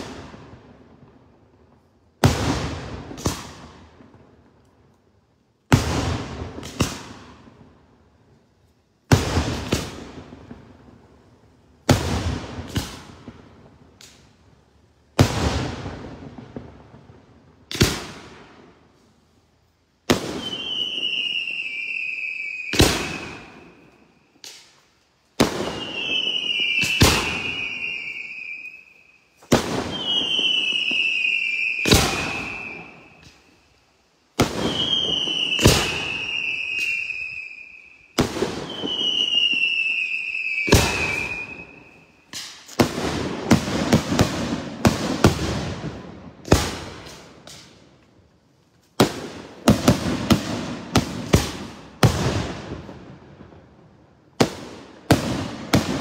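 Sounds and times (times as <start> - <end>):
shrill firework whistles: 20.1 - 47.9.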